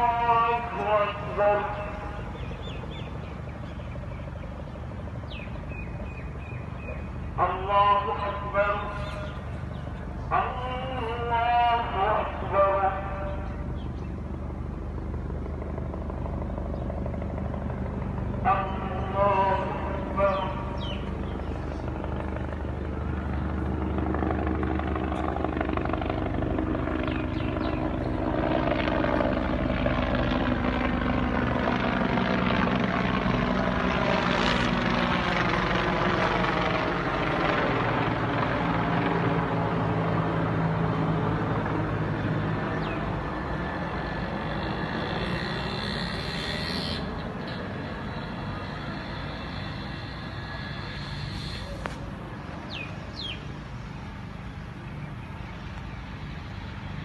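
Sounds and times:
aircraft engine drone: 0.0s - 57.0s.

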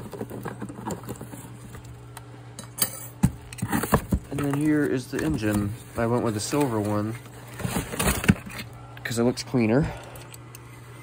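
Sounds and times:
steady low hum: 0.0s - 11.0s
cardboard box rustling: 3.6s - 8.6s.

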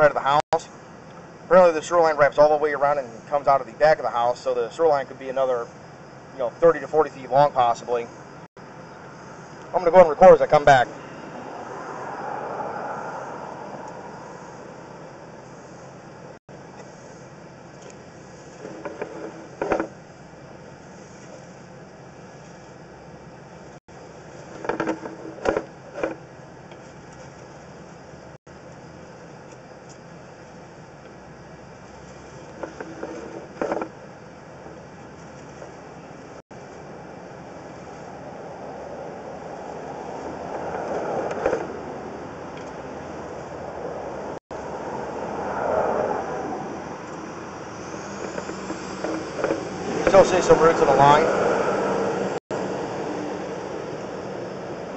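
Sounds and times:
mechanical rumble: 12.8s - 54.9s.

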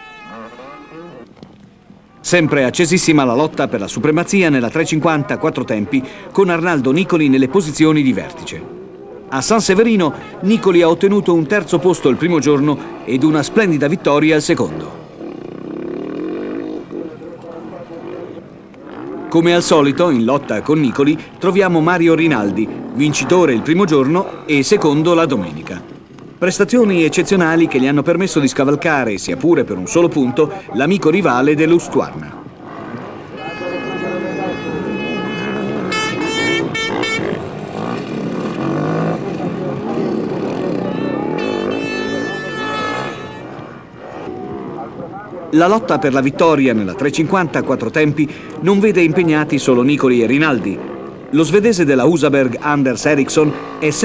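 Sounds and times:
motorcycle engines revving: 0.0s - 54.0s
voices: 0.0s - 54.0s
motorcycle engine running hard: 34.4s - 44.0s.

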